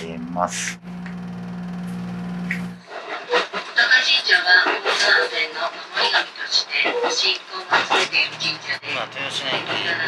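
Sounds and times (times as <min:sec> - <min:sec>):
voices: 0:00.0 - 0:00.8, 0:02.5 - 0:10.0
train cabin noise: 0:00.0 - 0:10.0
train engine humming: 0:00.0 - 0:10.0.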